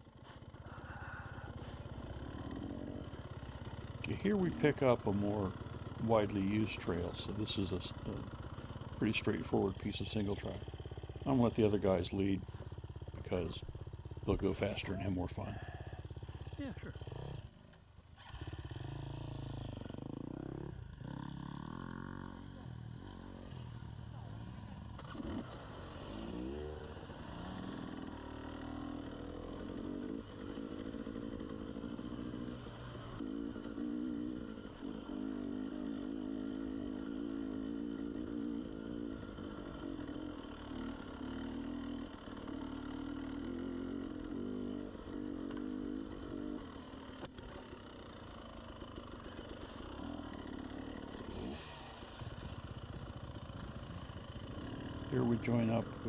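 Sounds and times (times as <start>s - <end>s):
dirt bike engine revving: 0.1s - 56.0s.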